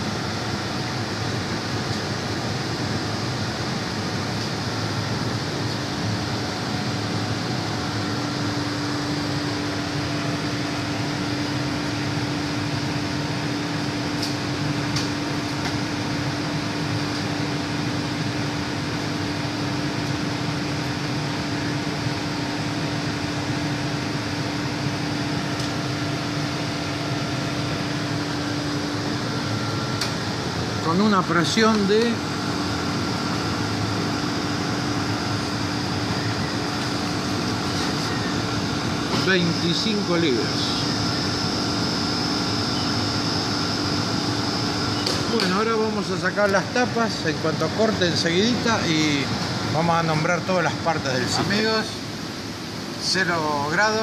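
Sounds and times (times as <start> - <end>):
refrigeration unit running: 0.0 - 54.0
steady low hum: 0.0 - 54.0.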